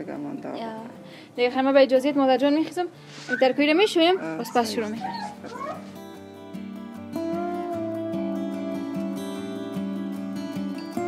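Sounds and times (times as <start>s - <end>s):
soft guitar music: 0.0s - 11.0s
wavering meow-like calls: 4.2s - 6.0s.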